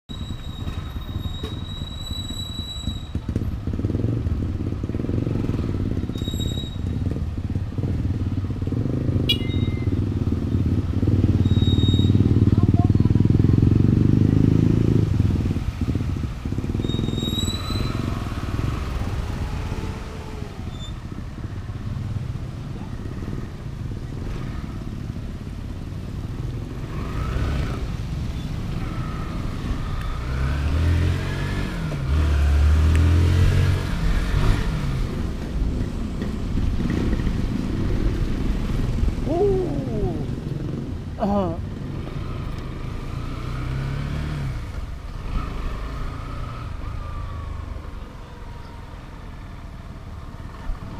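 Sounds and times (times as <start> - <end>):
motorcycle engine accelerating: 3.1 - 6.1, 6.9 - 17.2, 28.7 - 48.7.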